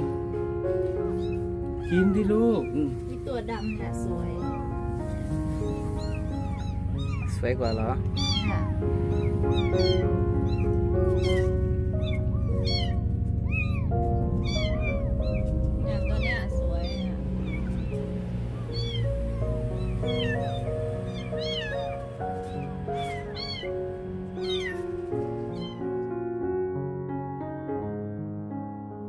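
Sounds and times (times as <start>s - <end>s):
background music: 0.0s - 29.0s
kittens mewing: 1.0s - 4.8s, 5.5s - 26.1s.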